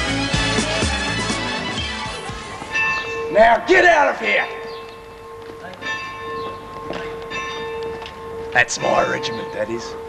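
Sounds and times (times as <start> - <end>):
bells ringing: 2.6 - 10.0.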